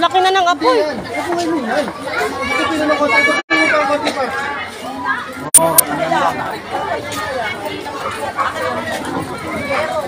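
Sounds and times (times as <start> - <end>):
crowd babble of voices: 0.0 - 10.0.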